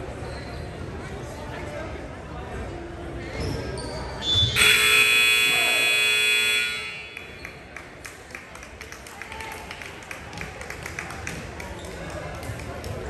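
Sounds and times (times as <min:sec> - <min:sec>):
murmur of voices in hall: 0:00.0 - 0:13.0
scoreboard buzzer: 0:04.6 - 0:07.3.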